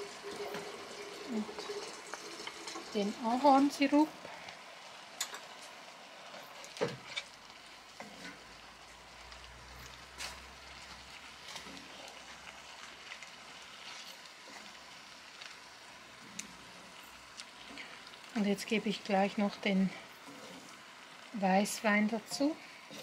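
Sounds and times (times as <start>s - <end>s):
mushrooms sizzling in a skillet: 0.0s - 23.0s
spatula scraping and knocking pan: 8.0s - 8.5s.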